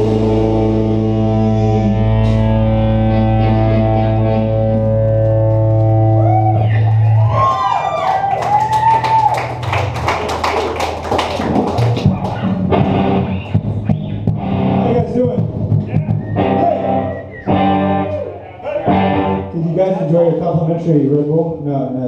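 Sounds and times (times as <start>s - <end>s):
guitar feedback swooping: 0.0s - 7.9s, 12.1s - 19.8s.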